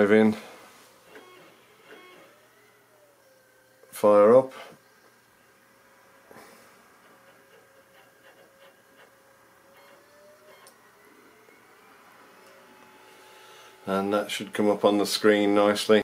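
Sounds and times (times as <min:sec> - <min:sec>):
optical drive whine: 0:00.9 - 0:16.0.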